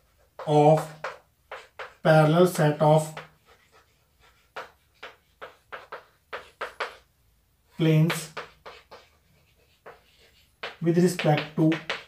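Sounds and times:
chalk scratching on blackboard: 0.0 - 2.0, 3.1 - 7.1, 8.1 - 12.0
chalk tap: 0.0 - 7.1, 7.8 - 12.0
man speaking: 0.4 - 1.0, 2.0 - 3.2, 7.8 - 8.4, 10.8 - 12.0.

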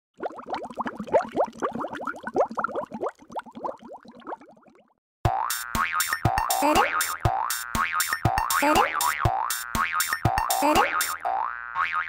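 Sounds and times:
cartoon bubbling bloops: 0.2 - 5.5.

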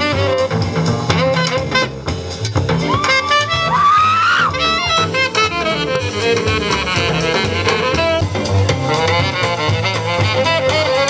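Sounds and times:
saxophone line: 0.0 - 11.0
upright bass: 0.0 - 11.0.

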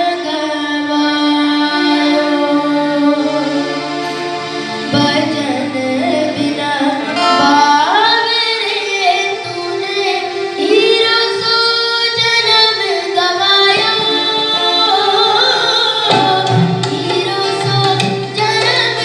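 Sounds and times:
child singing into microphone: 0.0 - 4.2, 4.9 - 19.0
harmonium: 0.0 - 19.0
hand drums: 16.0 - 19.0.

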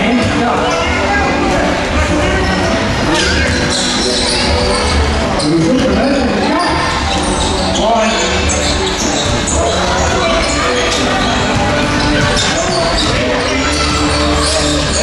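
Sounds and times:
sneakers squeaking: 0.0 - 15.0
voices echoing in hall: 0.0 - 15.0.

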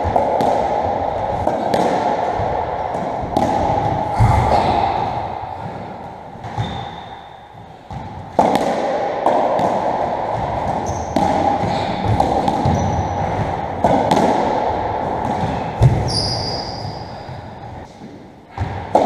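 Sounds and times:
ball hitting racket and walls: 0.0 - 19.0
shoes squeaking on wooden floor: 6.5 - 7.2, 12.6 - 13.2, 16.0 - 17.0.

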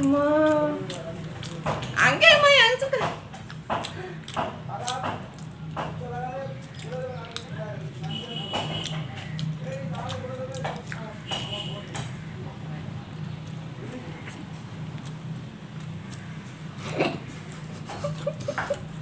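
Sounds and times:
chewing: 0.0 - 2.0, 3.3 - 19.0
steady low hum: 0.0 - 19.0.

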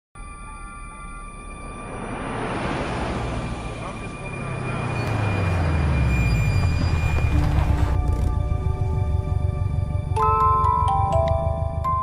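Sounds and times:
rush of noise: 1.0 - 7.2
background music: 1.8 - 12.0.

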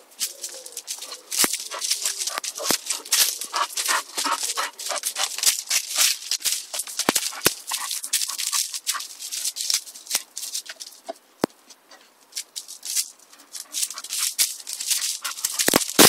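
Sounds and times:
paws crunching gravel and leaves: 0.0 - 16.0.

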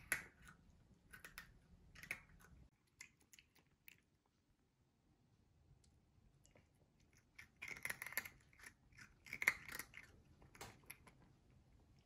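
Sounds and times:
cat crunching dry kibble: 0.0 - 4.1, 6.5 - 11.6.

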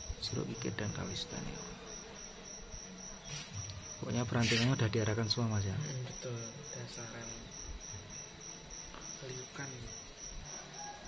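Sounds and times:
cricket chirping: 0.0 - 11.0.

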